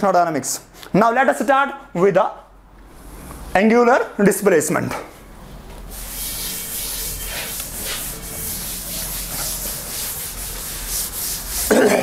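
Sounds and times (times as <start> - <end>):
cloth rubbing on chalkboard: 5.5 - 12.0.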